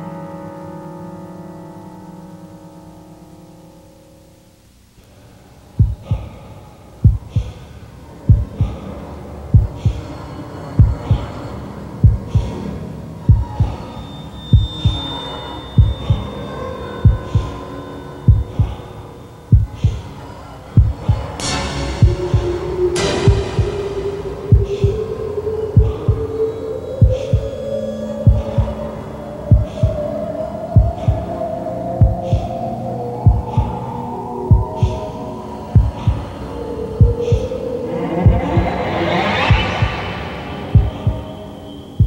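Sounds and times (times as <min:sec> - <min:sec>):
held rising tone: 0:21.4 - 0:30.1, 0:33.0 - 0:42.0
heartbeat-like double thump: 0:35.8 - 0:36.2, 0:37.0 - 0:41.3
crashing swells of noise: 0:36.8 - 0:42.0.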